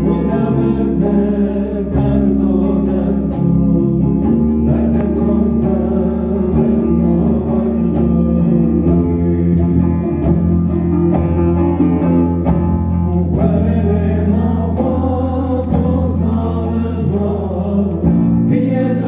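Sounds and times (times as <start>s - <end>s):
person singing: 0.0s - 10.9s, 13.1s - 19.0s
plucked lutes: 0.0s - 19.0s.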